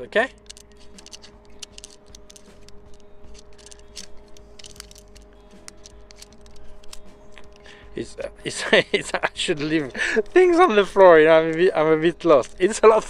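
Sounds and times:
faint steady hum: 0.0 - 13.0
small clicks of tripod handling: 0.4 - 7.7.

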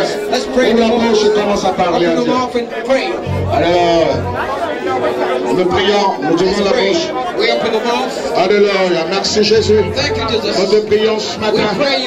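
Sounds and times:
church band bass notes: 0.0 - 12.0
congregation praying aloud: 0.0 - 12.0.

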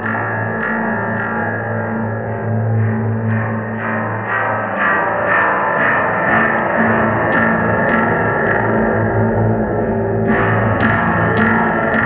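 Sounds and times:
electronic drone music: 0.0 - 12.0.

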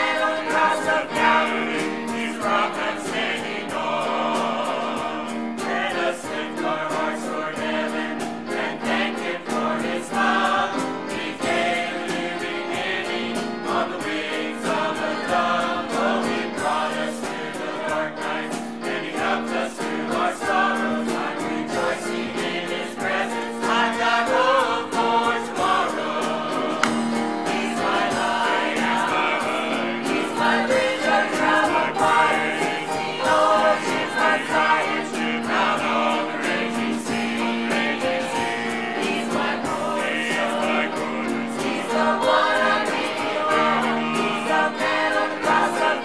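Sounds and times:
accompaniment with steady beat: 0.0 - 46.0
choir singing gospel: 0.0 - 46.0.

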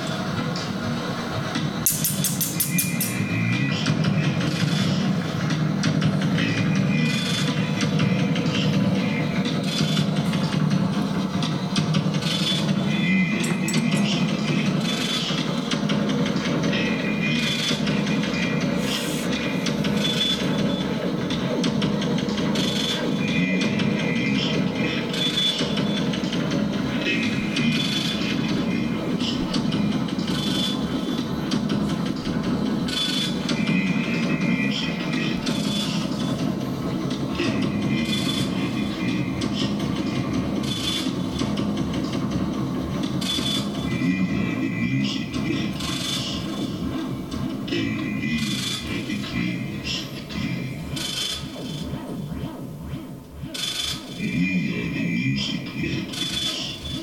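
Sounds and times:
dense electronic drone: 0.0 - 57.0.

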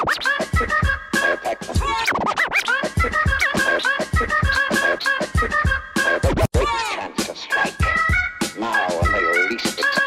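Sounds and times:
turntable scratching: 0.0 - 5.4, 6.0 - 8.0
hip hop beat kick and snare: 2.9 - 10.0.

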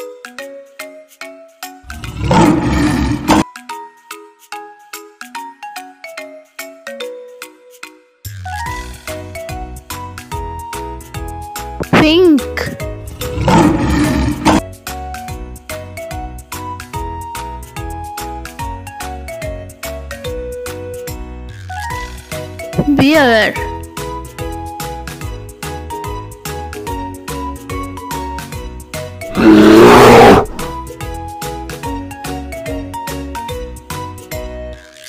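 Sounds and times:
children's background music: 0.0 - 29.3, 29.9 - 35.0
lion roar: 1.9 - 3.4, 13.0 - 14.6, 29.3 - 30.8.

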